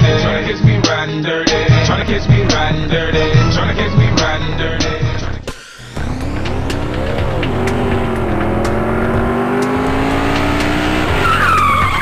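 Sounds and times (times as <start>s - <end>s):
background music with a beat: 0.0s - 12.0s
racing engine revving: 1.8s - 12.0s
tyre squeal: 10.9s - 12.0s.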